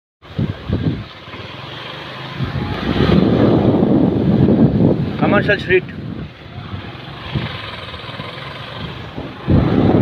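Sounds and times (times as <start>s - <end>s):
wind buffeting microphone: 0.2s - 1.5s, 2.2s - 10.0s
moving vehicle rumble: 0.2s - 10.0s.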